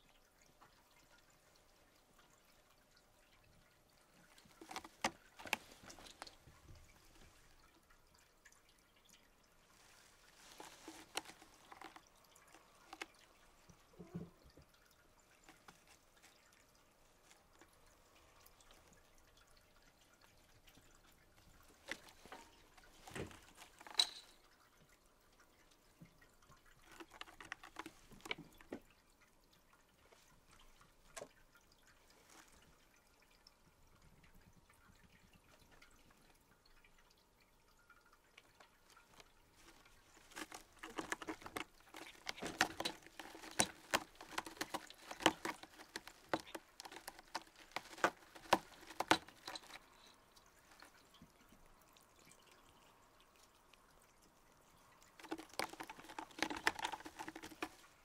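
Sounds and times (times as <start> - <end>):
cat claws scratching carpet: 9.8 - 13.2, 39.0 - 50.0, 55.2 - 58.0.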